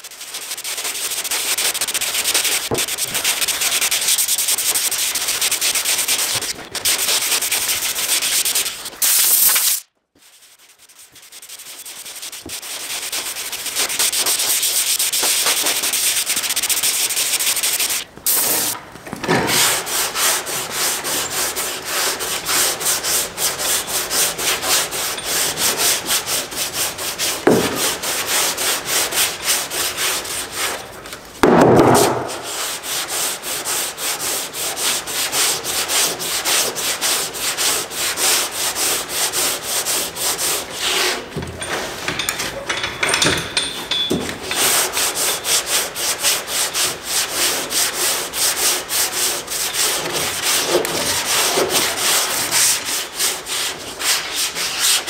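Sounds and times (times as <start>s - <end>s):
sanding block scraping: 0.0s - 18.8s, 19.5s - 30.9s, 31.8s - 41.3s, 44.4s - 55.0s.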